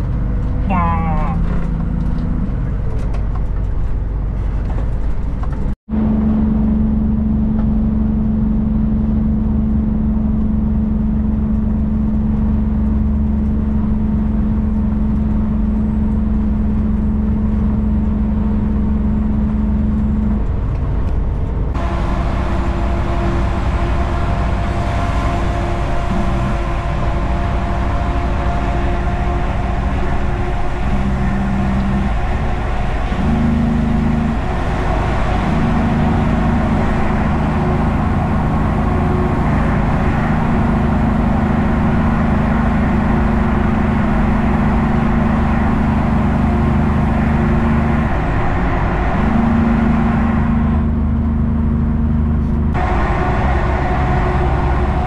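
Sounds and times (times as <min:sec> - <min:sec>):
diesel engine drone in cab: 0:00.0 - 0:55.0
road noise: 0:00.0 - 0:55.0.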